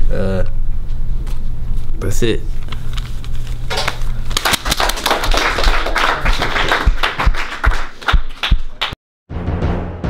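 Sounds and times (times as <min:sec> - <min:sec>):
applause: 0:04.3 - 0:09.0.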